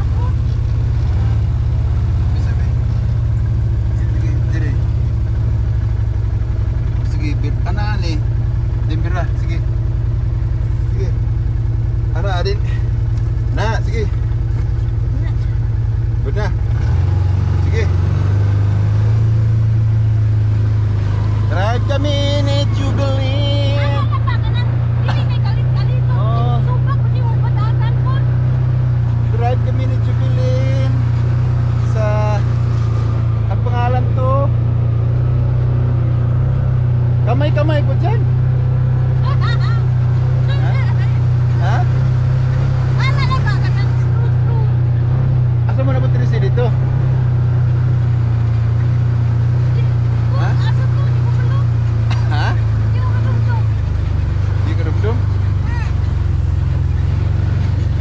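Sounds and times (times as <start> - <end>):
utility vehicle engine droning: 0.0 - 58.0.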